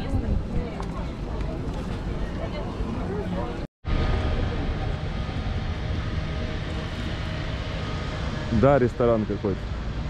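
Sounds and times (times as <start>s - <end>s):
faint voices: 0.0s - 9.5s
low outdoor rumble: 0.0s - 10.0s.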